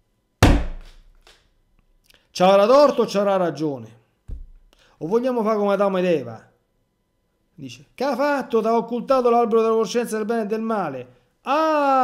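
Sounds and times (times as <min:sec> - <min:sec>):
sudden thunk: 0:00.4 - 0:01.0, 0:04.3 - 0:04.6.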